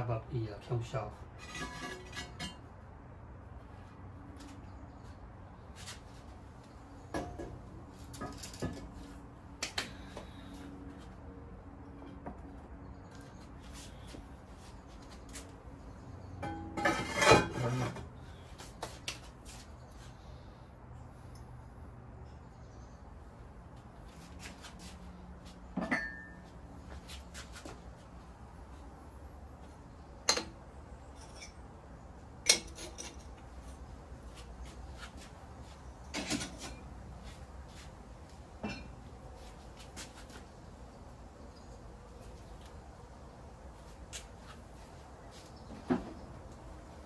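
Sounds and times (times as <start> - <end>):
ceramic pots clattering: 16.4 - 18.1, 25.8 - 26.4.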